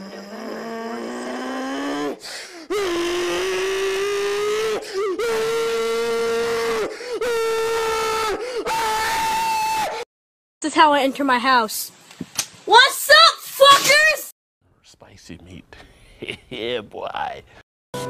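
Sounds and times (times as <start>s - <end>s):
man yelling long drawn-out notes: 2.7s - 6.8s.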